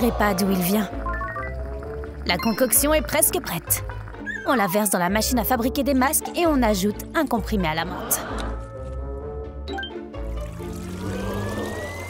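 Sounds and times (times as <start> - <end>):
background music: 0.0 - 12.0
liquid trickling into a mould: 10.2 - 12.0
thin tone rising in pitch: 10.6 - 12.0.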